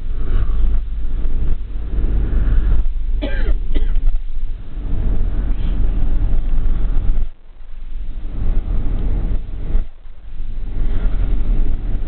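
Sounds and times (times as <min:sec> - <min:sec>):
vehicle road and engine rumble: 0:00.0 - 0:12.0
person clearing throat cough: 0:03.2 - 0:04.1.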